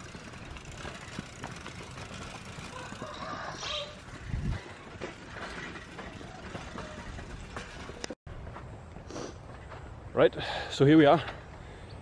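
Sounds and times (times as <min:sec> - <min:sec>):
bicycle clicks: 0:00.0 - 0:08.2
bicycle rattling on dirt track: 0:00.0 - 0:08.6
wind on microphone: 0:04.2 - 0:04.6.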